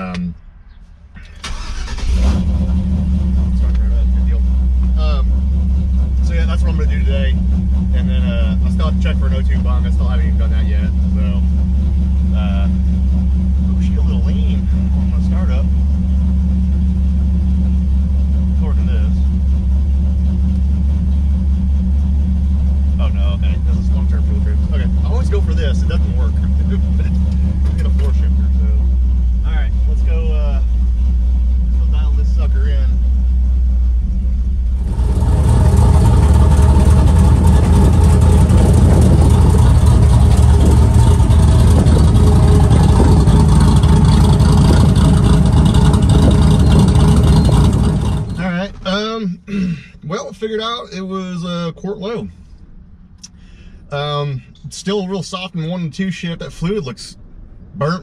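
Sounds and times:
loud engine and road noise: 0.0s - 48.6s, 51.8s - 54.7s
engine idling heard from cab: 0.0s - 58.0s.

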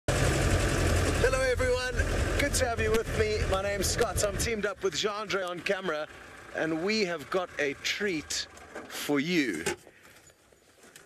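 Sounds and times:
vehicle engine running: 0.1s - 9.5s
man's voice: 1.2s - 9.8s.

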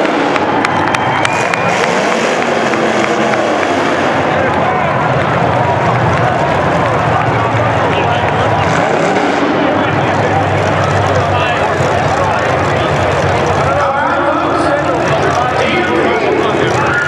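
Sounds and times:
car engines running: 0.0s - 17.0s
indistinct voices: 0.0s - 17.0s.

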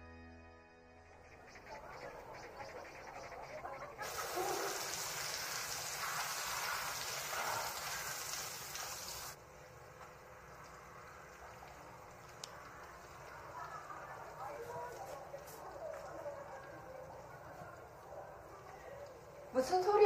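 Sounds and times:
shower spray running: 4.0s - 9.4s.

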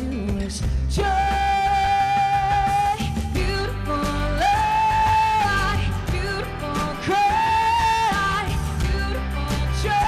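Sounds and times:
instrumental backing: 0.0s - 10.0s
woman singing pop: 0.0s - 10.0s.

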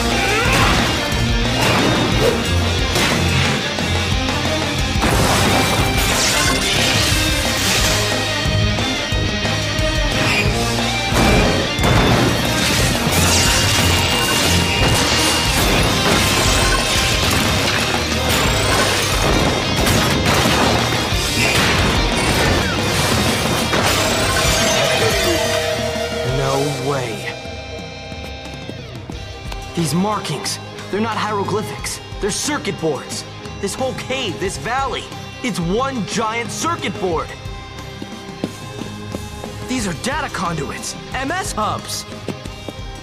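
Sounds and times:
soundtrack music: 0.0s - 43.0s
rocks smashing: 5.0s - 6.2s.

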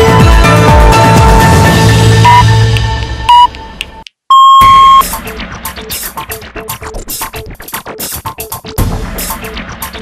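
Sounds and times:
electronic beeps: 4.3s - 5.0s.

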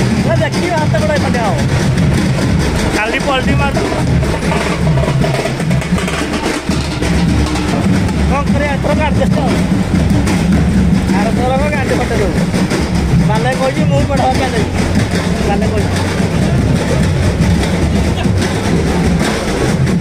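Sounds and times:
tractor engine running: 0.0s - 20.0s
voices calling out: 0.0s - 20.0s.

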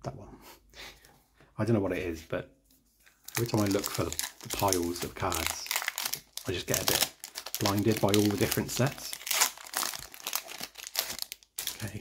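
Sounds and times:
foil wrapper crinkling: 3.2s - 12.0s.

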